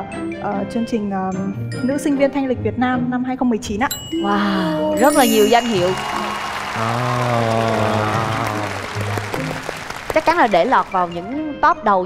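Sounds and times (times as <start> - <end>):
music with sustained notes: 4.0 - 12.0
audience applause: 5.0 - 11.4.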